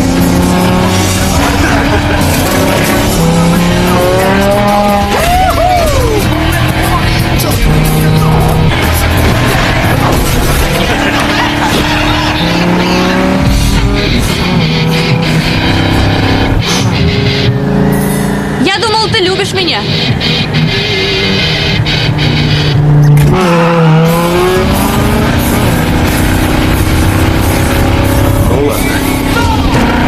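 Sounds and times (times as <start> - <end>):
car engines revving: 0.0 - 30.0
driving music: 0.0 - 30.0.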